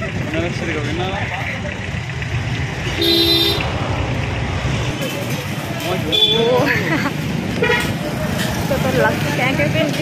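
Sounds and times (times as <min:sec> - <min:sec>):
engine and road rumble: 0:00.0 - 0:10.0
vehicle horn toot: 0:02.9 - 0:03.7.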